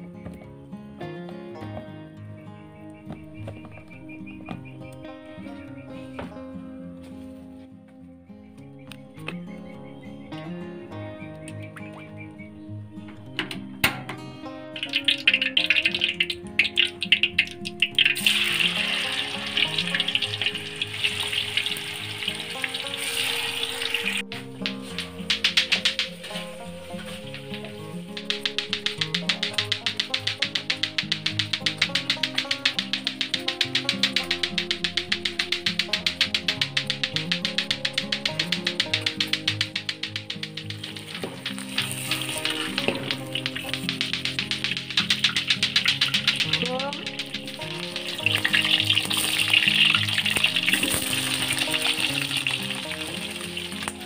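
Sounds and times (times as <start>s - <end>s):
background music: 0.0s - 54.0s
oil sizzling in a wok: 17.9s - 24.2s, 50.5s - 53.9s.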